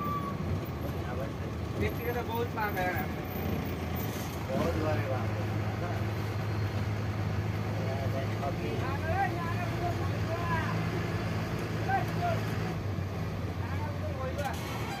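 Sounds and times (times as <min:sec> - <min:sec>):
bus engine droning: 0:00.0 - 0:15.0
voices: 0:04.4 - 0:12.8.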